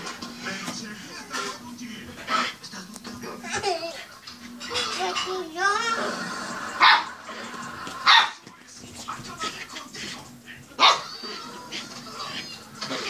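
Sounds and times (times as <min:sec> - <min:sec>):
puppy yapping: 0:08.0 - 0:08.4, 0:10.8 - 0:11.4.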